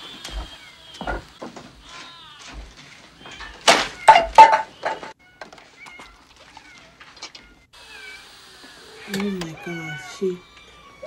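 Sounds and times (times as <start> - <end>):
cats meowing: 0.0 - 11.0
falling calls: 0.0 - 11.0
person speaking: 9.0 - 10.4.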